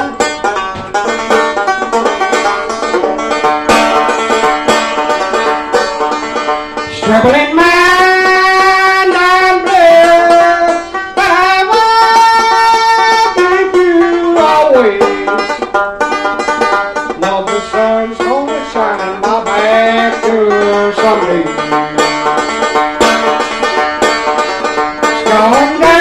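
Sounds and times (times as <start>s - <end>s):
man singing blues: 0.0s - 0.7s, 6.8s - 15.7s, 16.9s - 22.6s, 25.0s - 26.0s
banjo picking: 0.0s - 26.0s.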